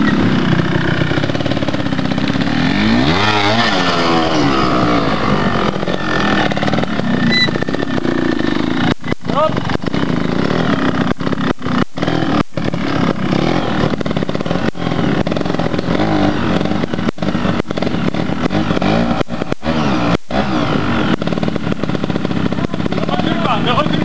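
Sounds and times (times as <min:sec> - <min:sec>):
motorcycle engine revving: 0:00.0 - 0:24.0.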